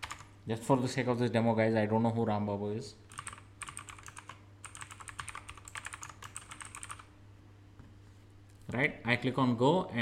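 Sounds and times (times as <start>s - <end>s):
fast keyboard typing: 0.0s - 0.3s, 3.1s - 7.1s.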